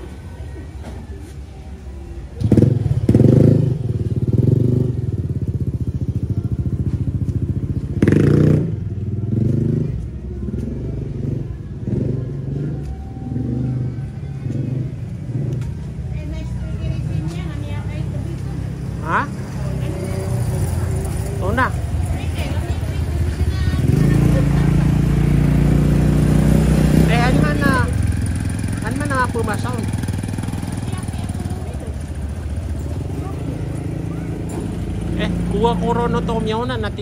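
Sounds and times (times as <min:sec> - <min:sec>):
small motorcycle engine revving: 0:23.2 - 0:37.0.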